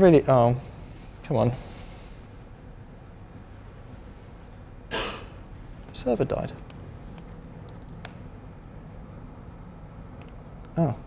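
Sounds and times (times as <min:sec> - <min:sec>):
low steady room hum: 0:00.0 - 0:11.0
laptop keyboard typing: 0:07.2 - 0:08.2.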